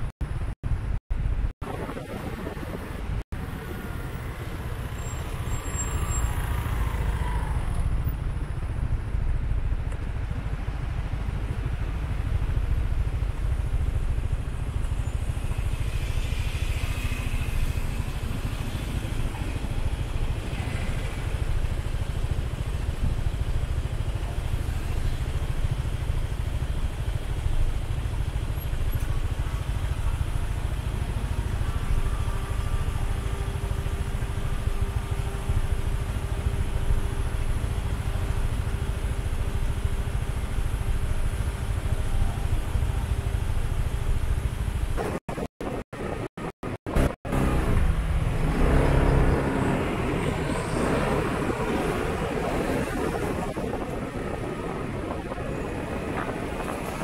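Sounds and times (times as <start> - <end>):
surrounding traffic: 0.0 - 57.0.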